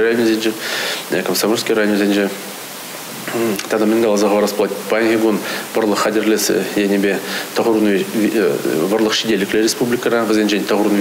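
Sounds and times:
steady hiss: 0.0 - 11.0
man speaking: 3.2 - 11.0.

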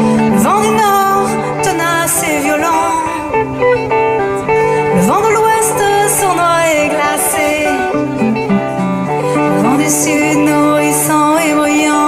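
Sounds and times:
woman singing: 0.0 - 8.5, 9.1 - 12.0
electric guitar: 0.0 - 12.0.

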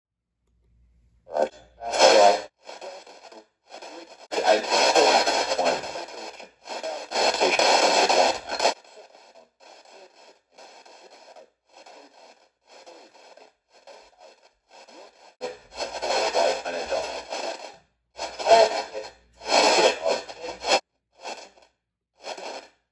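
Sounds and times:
radio static bursts: 1.4 - 21.5, 22.2 - 22.6.

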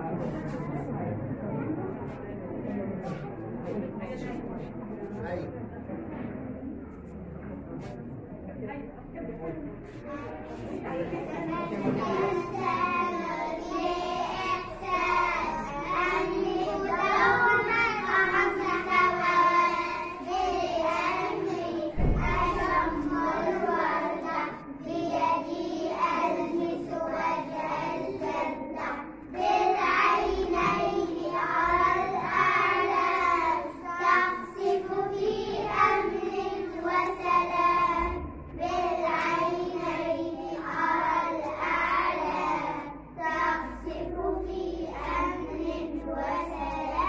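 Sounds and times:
children singing together: 10.6 - 47.0.

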